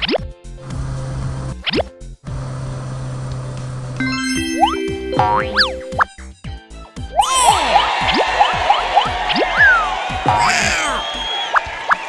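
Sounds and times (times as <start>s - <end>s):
rising cartoon bloop: 4.0s - 6.1s, 7.2s - 7.8s
children's background music: 4.0s - 11.0s.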